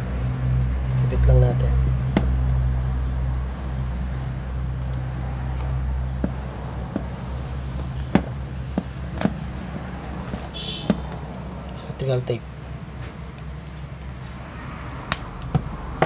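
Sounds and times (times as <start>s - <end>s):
steady low hum: 0.0s - 16.0s
wires clicking and tapping: 1.8s - 12.1s.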